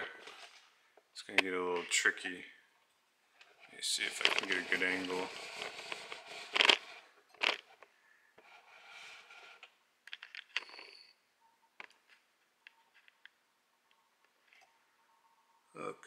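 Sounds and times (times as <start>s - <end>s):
scraping rub: 3.5s - 7.8s, 8.4s - 9.7s
faint thin steady tone: 10.5s - 16.0s.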